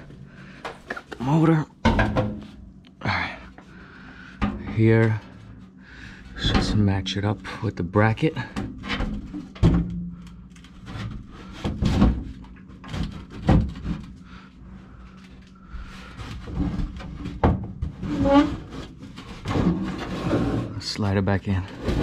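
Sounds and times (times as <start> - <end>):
low steady hum: 0.0 - 22.0
sheet metal knocks and scraping: 1.8 - 2.6, 16.4 - 20.8
metal thuds: 1.8 - 2.8, 4.2 - 5.6.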